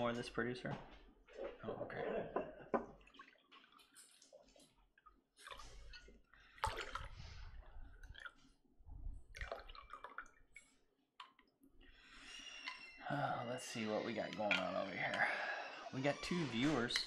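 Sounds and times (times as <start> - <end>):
drink pouring into glasses: 9.3 - 11.4, 13.8 - 17.0.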